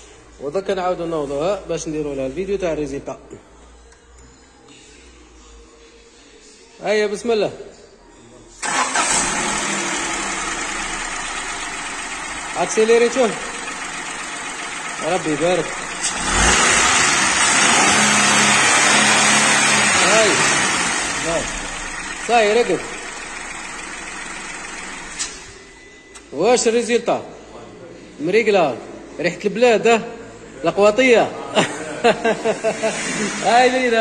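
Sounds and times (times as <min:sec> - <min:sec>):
car engine idling: 0:08.6 - 0:25.7.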